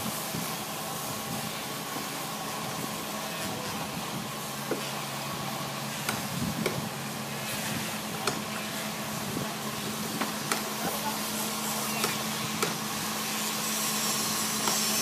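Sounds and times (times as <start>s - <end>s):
distant machinery hum: 0.0s - 15.0s.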